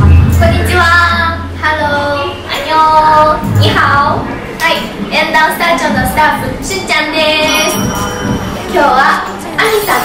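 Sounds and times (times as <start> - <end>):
background music with bass: 0.0 - 5.1.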